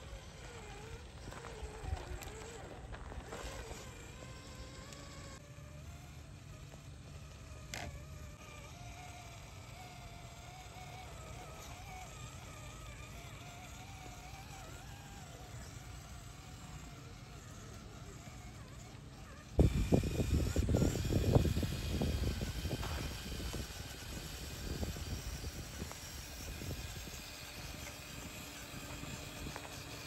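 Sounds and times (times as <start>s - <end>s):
rc car motor whining: 0.0s - 30.0s.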